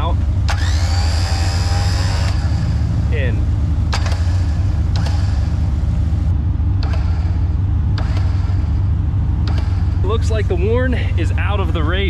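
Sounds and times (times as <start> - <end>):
electric winch motor running: 0.0 - 10.5
sharp clicks: 3.9 - 5.4, 8.0 - 8.4.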